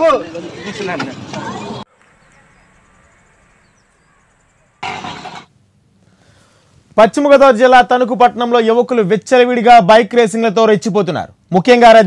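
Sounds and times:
loud street noise: 0.0 - 5.5
faint high chirps: 1.9 - 4.8.

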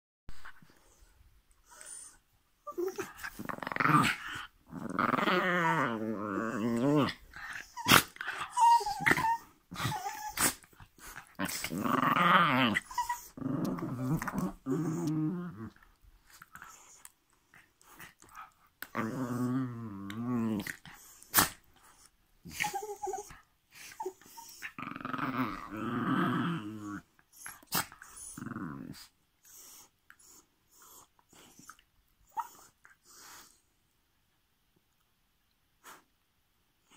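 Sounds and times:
dogs growling: 2.7 - 17.1, 17.8 - 31.8.

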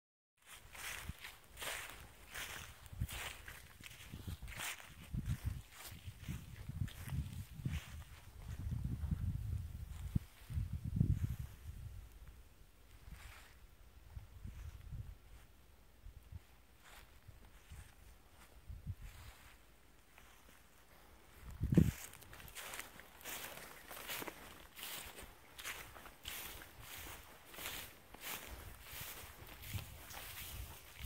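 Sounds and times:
footsteps crunching through dry grass: 0.4 - 31.0.

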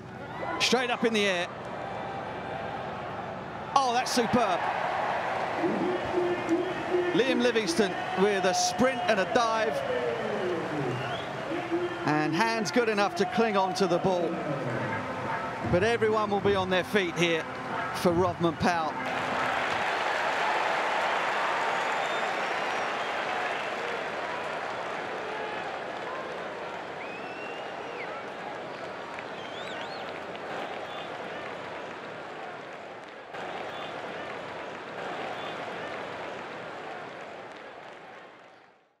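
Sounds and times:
crowd applauding and cheering: 0.2 - 38.9
short whistles: 27.0 - 28.2, 29.3 - 30.0.

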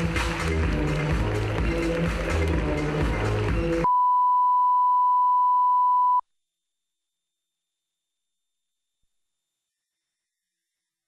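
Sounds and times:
music with steady beat: 0.0 - 3.9
steady pure test tone beep: 3.8 - 6.2.

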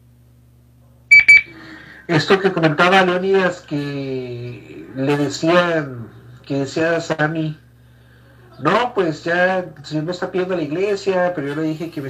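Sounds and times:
faint electrical hum: 0.0 - 12.0
high electronic beeps: 1.1 - 1.5.

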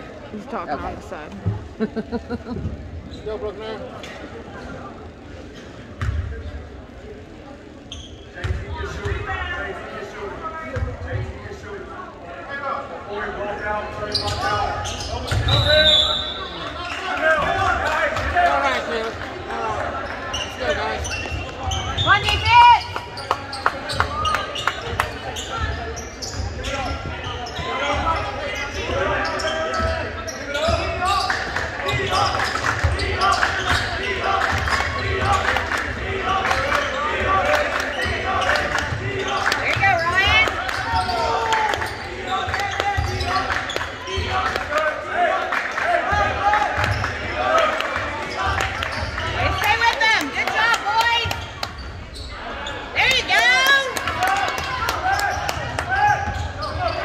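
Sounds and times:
voices of spectators and players: 0.0 - 57.0.

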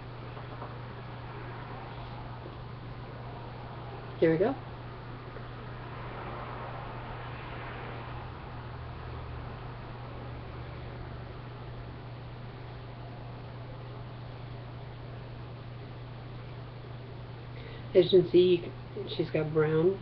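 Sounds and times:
low hum and hiss: 0.0 - 20.0.

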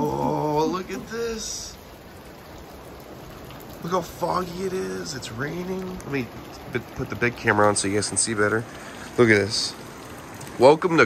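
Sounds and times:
man talking: 0.0 - 1.8, 3.8 - 9.8, 10.6 - 11.0
steady rain falling: 0.0 - 11.0.

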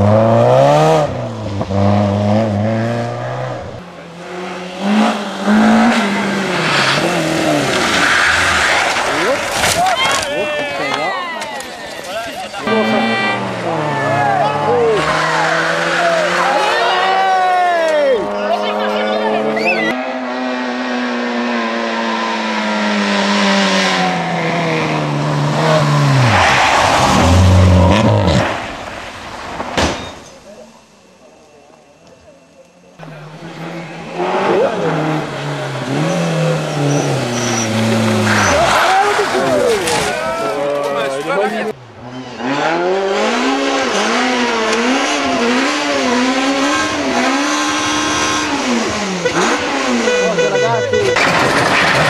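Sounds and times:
rally car engines revving: 0.0 - 11.1, 12.0 - 31.3, 32.0 - 52.0
tyres rushing on snow and ice: 0.0 - 20.0, 22.1 - 32.0, 33.0 - 52.0
tyres sliding on snow: 5.2 - 12.8, 33.0 - 41.7.

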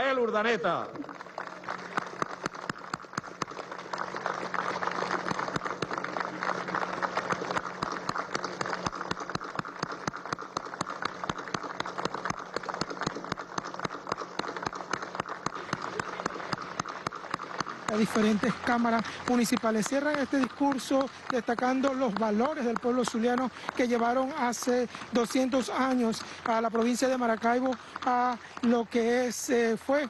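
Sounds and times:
audience applauding: 0.0 - 29.6
faint low hum: 0.0 - 30.0.

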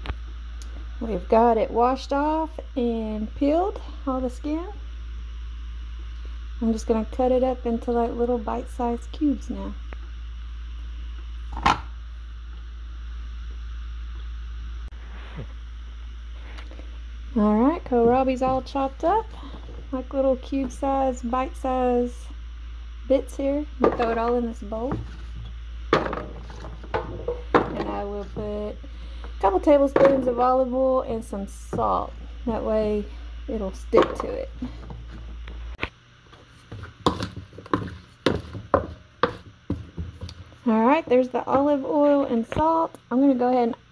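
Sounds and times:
steady low hum: 0.0 - 43.9
wooden spoon knocking in plastic bowl: 25.9 - 28.5, 36.7 - 40.4.

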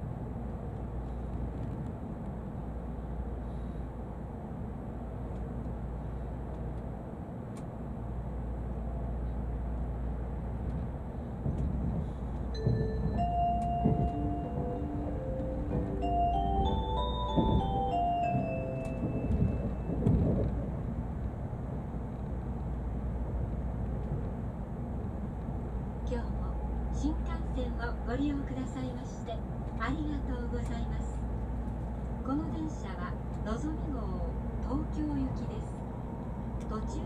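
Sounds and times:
train rumbling at speed: 0.0 - 37.0.

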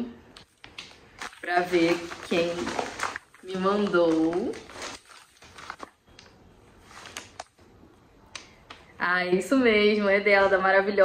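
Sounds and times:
paper card rustling: 0.5 - 6.0, 6.8 - 7.5.

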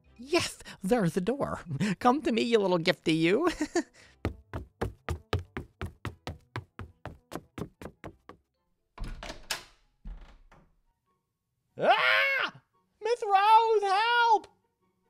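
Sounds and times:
hurried footsteps: 4.1 - 8.5.

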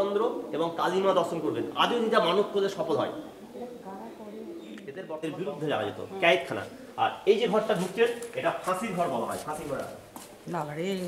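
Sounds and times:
bird cooing: 0.0 - 8.0
quiet talking: 0.0 - 11.0.

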